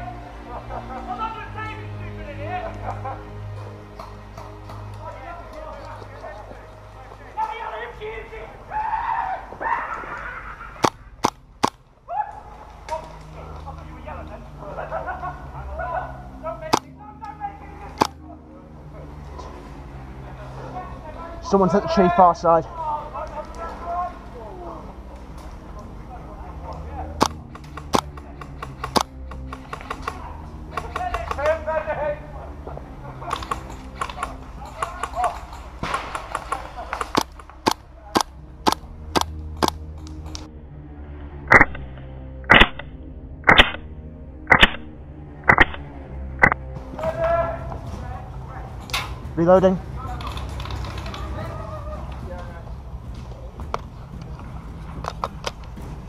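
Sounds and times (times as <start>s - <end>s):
airsoft gun reloading: 27.2s - 31.4s, 33.3s - 34.4s, 41.5s - 41.9s, 42.5s - 43.8s, 44.5s - 44.9s, 45.5s - 46.6s
airsoft guns firing: 33.3s - 39.8s, 42.5s - 42.8s, 43.5s - 43.8s, 44.5s - 44.9s, 45.5s - 46.6s.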